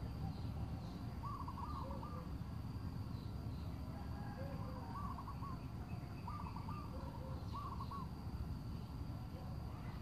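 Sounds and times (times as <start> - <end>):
bird calling: 0.0 - 2.5, 4.0 - 8.3.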